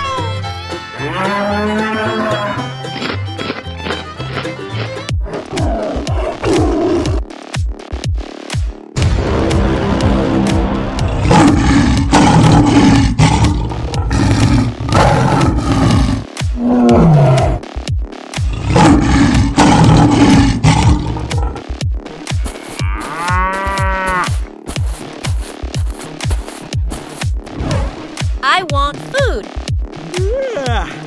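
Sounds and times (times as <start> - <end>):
background music: 0.0 - 31.0
cow mooing: 1.0 - 2.8, 22.4 - 24.4
big cat roaring: 11.0 - 17.6, 18.6 - 21.6.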